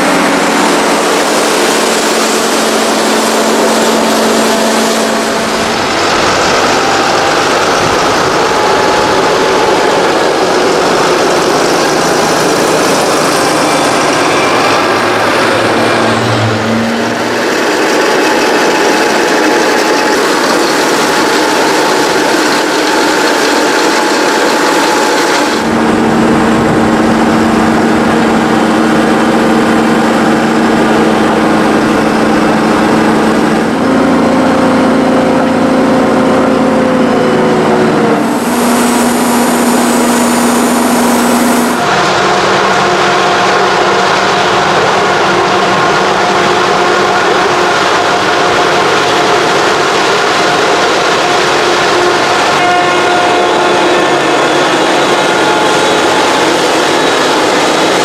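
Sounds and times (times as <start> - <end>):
tractor diesel engines under load: 0.0 - 58.0.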